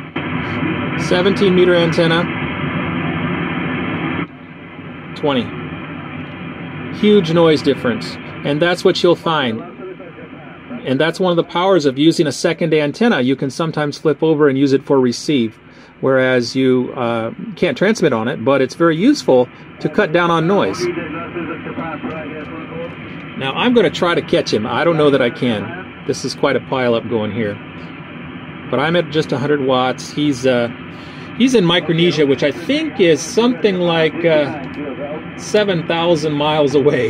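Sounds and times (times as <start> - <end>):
radio band hiss: 0.0 - 37.0
radio receiver hissing: 19.0 - 37.0.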